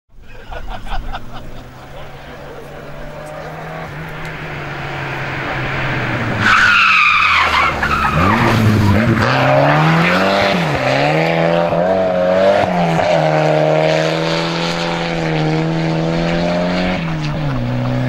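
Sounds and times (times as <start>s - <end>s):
car engine revving hard: 0.9s - 18.0s
tyre squeal: 6.4s - 10.5s.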